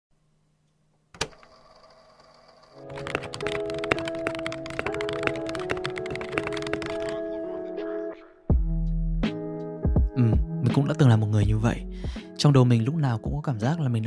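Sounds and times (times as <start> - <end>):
keyboard key clicks: 2.9 - 7.2.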